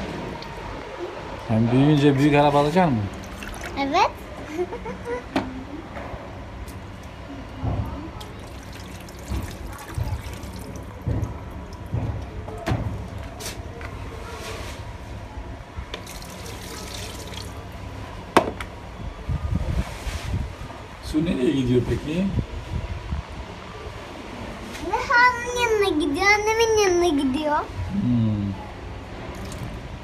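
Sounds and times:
water pouring and splashing: 3.1s - 3.9s, 8.2s - 13.4s, 16.0s - 17.8s, 29.2s - 29.8s.

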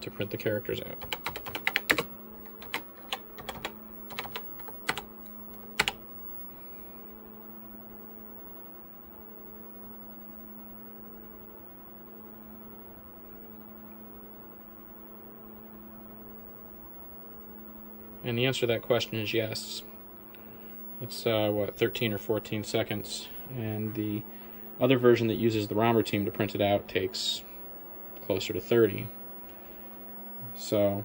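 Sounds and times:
steady low hum: 0.0s - 31.0s
keyboard keys clicking: 1.0s - 6.0s.

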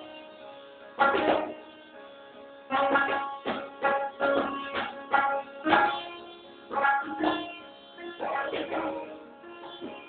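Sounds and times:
sitar plucked notes: 0.0s - 10.0s.

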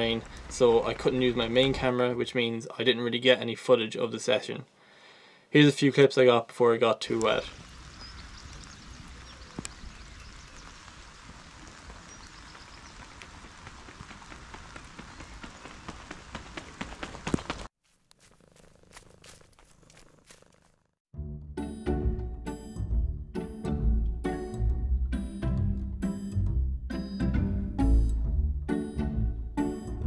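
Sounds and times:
steady rain hiss: 0.0s - 2.0s, 6.9s - 17.6s
raindrop ticks: 7.1s - 17.6s.

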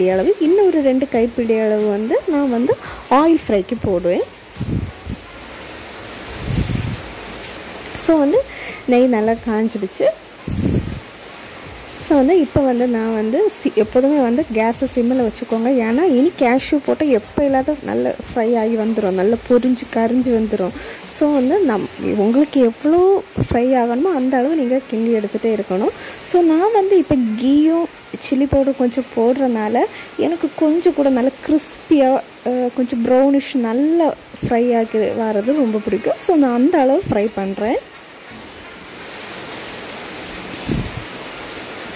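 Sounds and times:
woman speaking: 0.0s - 4.3s, 7.9s - 10.2s, 12.0s - 37.9s
steady low hiss: 0.0s - 41.9s.

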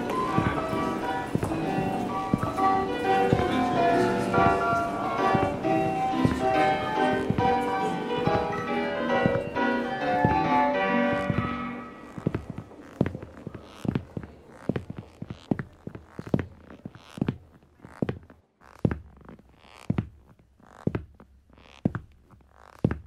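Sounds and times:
music: 0.0s - 12.2s
boot footsteps on wooden floor: 0.0s - 23.0s.

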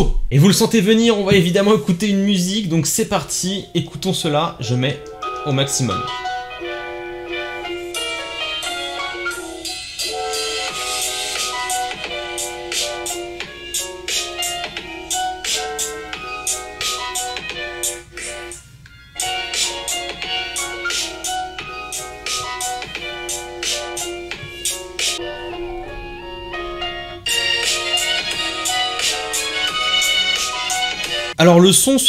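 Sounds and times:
instrumental music from phone speaker: 5.0s - 31.4s.

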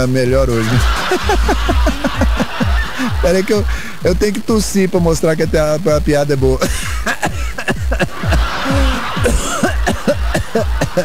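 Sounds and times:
radio hiss: 0.0s - 11.0s
person laughing: 0.6s - 4.0s, 6.6s - 11.0s.

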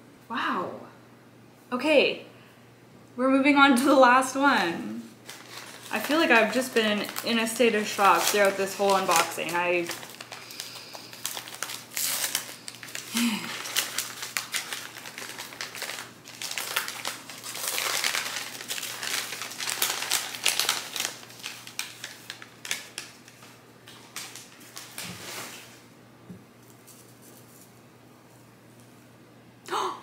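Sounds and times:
paper crinkling and rustling: 5.2s - 25.8s.

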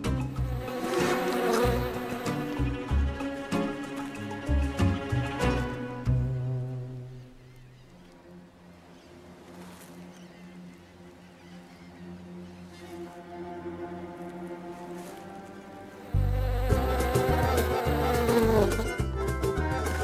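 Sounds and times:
faint music: 0.0s - 20.0s
flies buzzing: 0.0s - 20.0s.

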